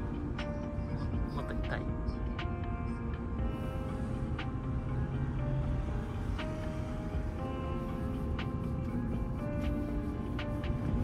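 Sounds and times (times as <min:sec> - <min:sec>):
car rumbling in motion: 0:00.0 - 0:11.0
soft background music: 0:00.0 - 0:11.0.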